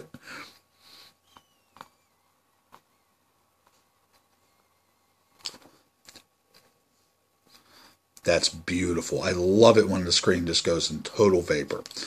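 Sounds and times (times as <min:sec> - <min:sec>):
thin airflow whistle: 0:01.0 - 0:02.4.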